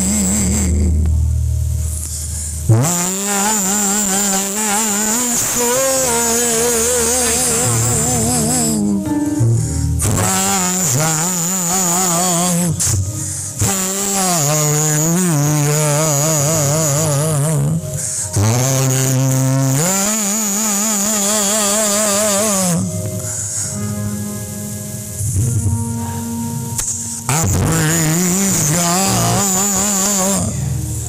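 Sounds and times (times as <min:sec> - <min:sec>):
man singing into a microphone: 0:00.0 - 0:24.5, 0:25.2 - 0:31.0.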